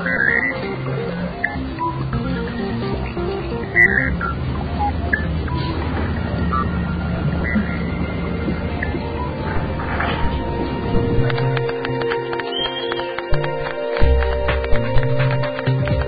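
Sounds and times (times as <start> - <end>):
melody over low bass: 0.0 - 16.0.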